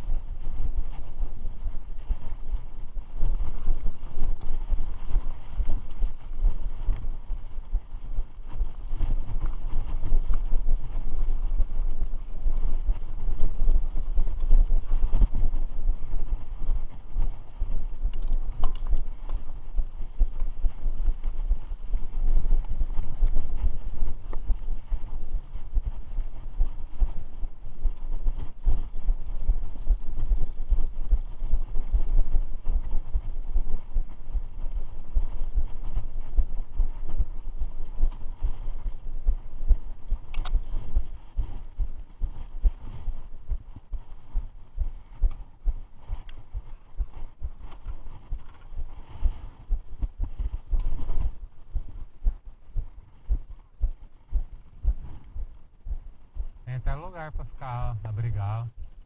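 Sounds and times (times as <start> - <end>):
mountain bike on rough trail: 0.0 - 51.9
wind buffeting microphone: 0.0 - 57.6.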